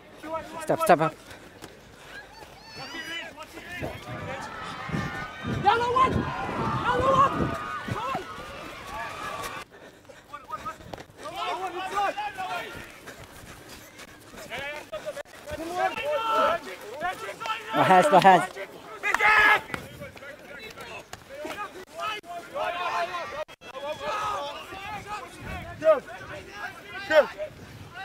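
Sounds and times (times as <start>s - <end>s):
open field background noise: 0.0s - 28.0s
players shouting short calls: 2.1s - 9.6s, 10.4s - 13.0s, 13.8s - 28.0s.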